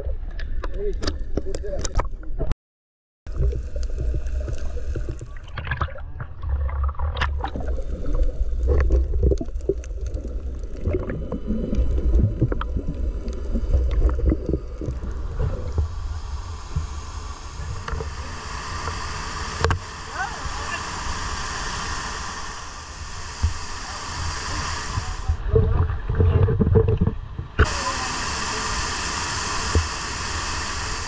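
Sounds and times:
muffled underwater rumble: 3.3 - 31.0
water splashes: 3.3 - 31.0
steady rush of water: 7.3 - 31.0.

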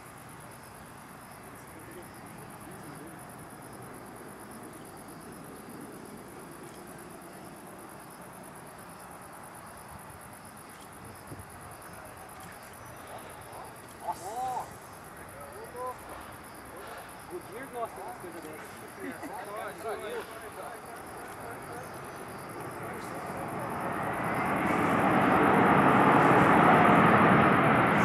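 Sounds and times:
crickets trilling: 0.0 - 28.0
jet engines rumbling: 0.0 - 28.0.

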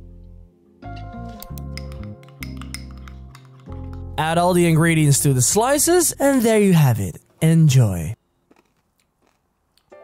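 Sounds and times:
background music: 0.0 - 6.9
metal spoon clinking on ceramic: 1.4 - 4.2.

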